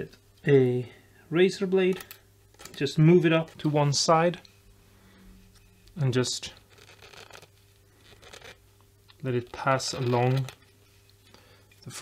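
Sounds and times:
razor blade scraping wood: 0:06.6 - 0:08.6.

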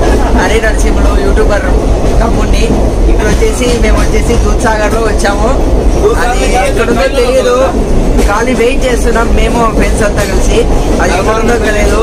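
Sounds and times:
train rumble inside coach: 0:00.0 - 0:12.0
voices: 0:00.0 - 0:12.0.

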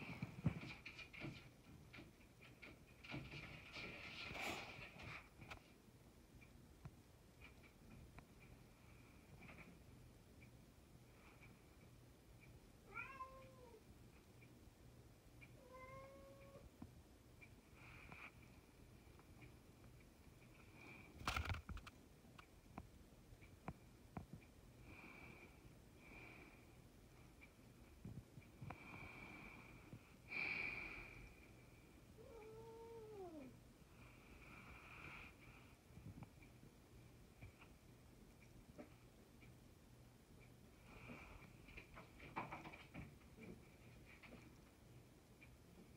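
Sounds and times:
cat meowing: 0:12.9 - 0:13.8.

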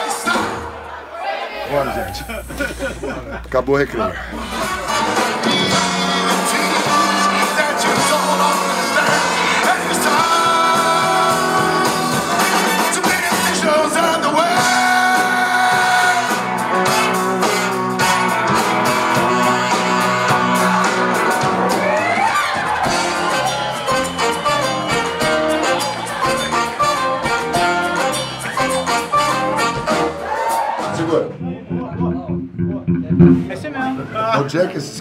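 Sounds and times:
live rock and roll band: 0:04.2 - 0:34.1
man singing: 0:04.9 - 0:16.5.

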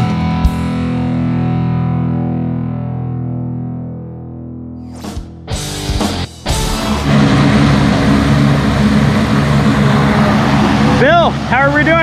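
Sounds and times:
distorted electric guitar rock: 0:00.0 - 0:12.0
loud steady engine drone: 0:06.5 - 0:12.0.

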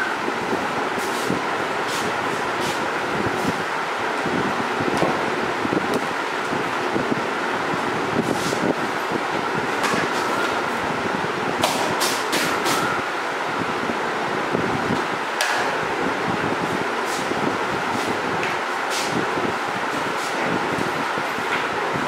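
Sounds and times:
steady background noise: 0:00.0 - 0:22.0.

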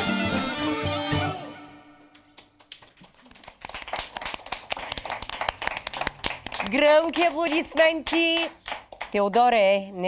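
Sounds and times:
people applauding: 0:02.1 - 0:09.6
woman speaking: 0:06.7 - 0:10.0.

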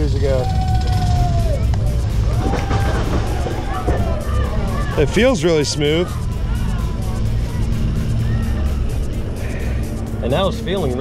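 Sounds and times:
chain lift rumble: 0:00.0 - 0:11.0
rapid ratchet clicking: 0:01.1 - 0:11.0.

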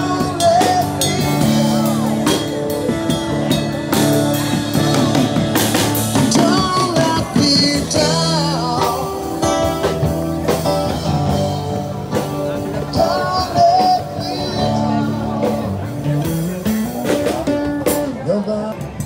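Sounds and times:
person singing: 0:00.0 - 0:03.6, 0:04.7 - 0:19.0
drum kit: 0:00.0 - 0:19.0
electric guitar: 0:00.0 - 0:19.0.

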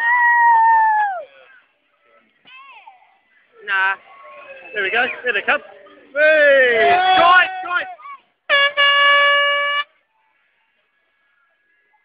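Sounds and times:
raised voices: 0:03.2 - 0:08.3
horn blast: 0:08.5 - 0:09.9.

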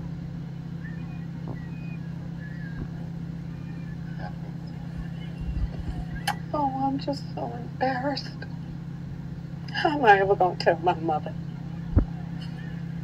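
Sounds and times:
steady low hum: 0:00.0 - 0:13.0
brief low rumble: 0:00.6 - 0:06.4.

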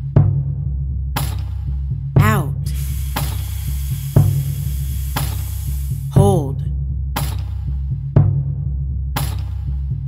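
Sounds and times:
airy hiss: 0:02.6 - 0:06.1.

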